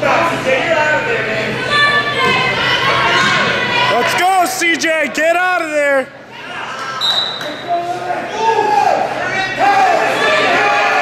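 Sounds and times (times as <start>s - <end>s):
referee's whistle: 7.0s - 7.7s
people shouting: 8.2s - 11.0s.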